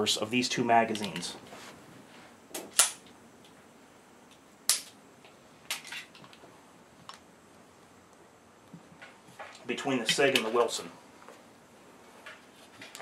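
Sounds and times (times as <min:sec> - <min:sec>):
pistol metallic clicks and clacks: 0:02.8 - 0:03.1.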